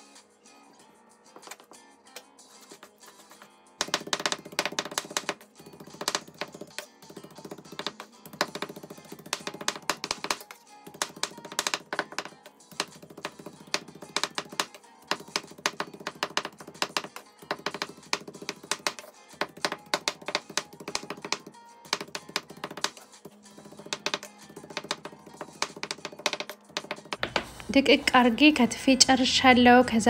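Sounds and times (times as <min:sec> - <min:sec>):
knife chopping meat on board: 0:03.8 - 0:23.0, 0:23.6 - 0:27.5.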